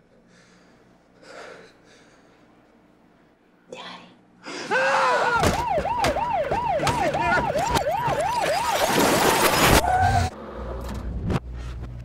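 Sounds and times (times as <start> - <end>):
siren yelping: 5.3 - 10.3.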